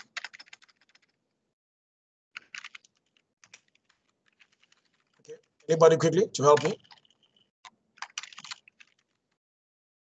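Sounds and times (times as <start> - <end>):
computer keyboard keystrokes: 0.0 - 1.2, 2.4 - 5.2, 8.0 - 9.2.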